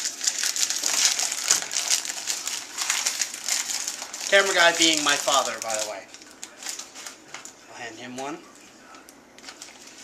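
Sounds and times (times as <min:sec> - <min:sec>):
plastic wrapper crinkling: 0:00.0 - 0:07.6, 0:08.9 - 0:10.0.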